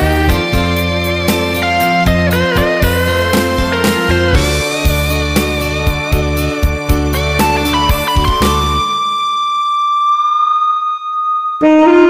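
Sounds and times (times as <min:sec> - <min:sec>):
saxophone playing: 0:00.0 - 0:10.2, 0:11.5 - 0:12.0
backing track: 0:00.0 - 0:12.0.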